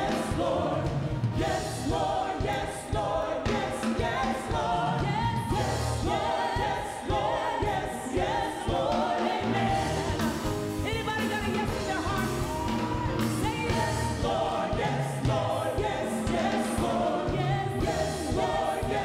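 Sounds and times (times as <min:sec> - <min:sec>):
backing singers: 0:00.0 - 0:19.0
band playing steady beat: 0:00.0 - 0:19.0
woman singing lead: 0:01.8 - 0:19.0.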